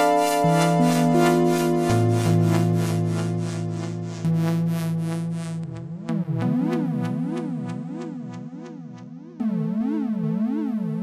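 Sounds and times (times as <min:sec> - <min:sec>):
synthesizer held notes: 0:00.0 - 0:08.6
synthesizer bass note: 0:00.0 - 0:11.0.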